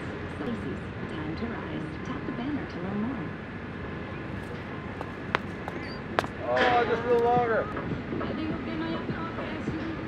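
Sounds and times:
outdoor background noise: 0:00.0 - 0:10.0
shoes tapping on concrete: 0:04.3 - 0:07.6.

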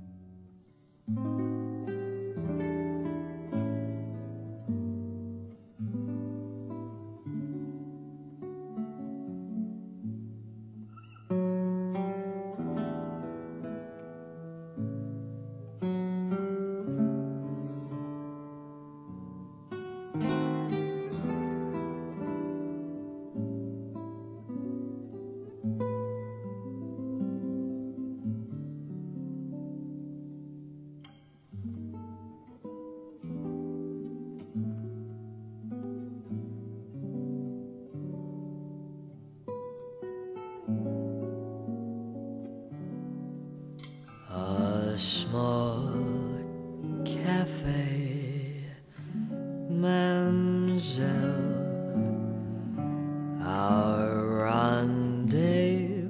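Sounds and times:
acoustic guitar ballad: 0:00.0 - 0:56.0.

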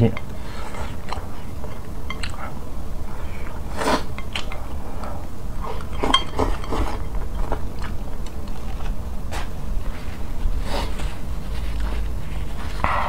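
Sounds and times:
chopsticks clinking on ceramic bowl: 0:05.7 - 0:07.6.

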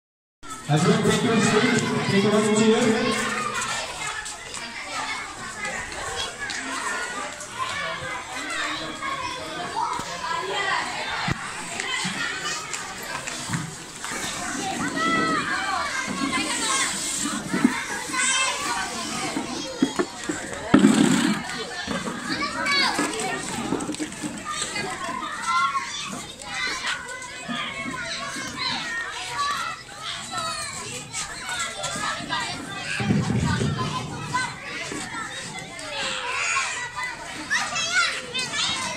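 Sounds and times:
young children calling and chattering: 0:00.4 - 0:38.9.

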